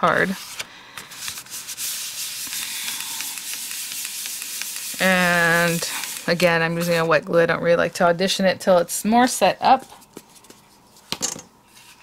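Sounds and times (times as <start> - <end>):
fingertips rubbing cardstock: 1.4 - 7.1.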